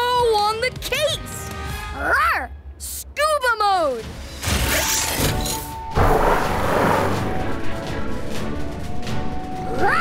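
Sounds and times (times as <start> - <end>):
cartoon background music: 0.0 - 10.0
mechanical sound effects: 4.4 - 7.2.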